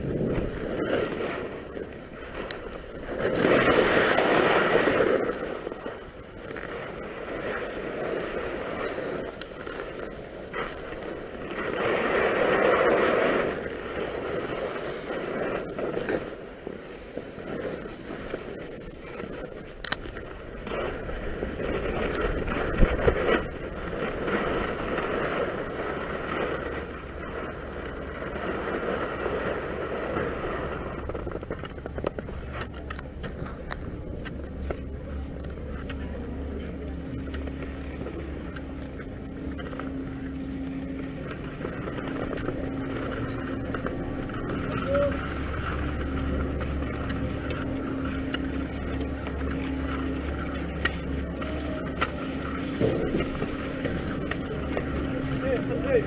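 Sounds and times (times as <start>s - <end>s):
low mechanical hum: 0.0s - 56.0s
skis scraping over snow: 0.0s - 56.0s.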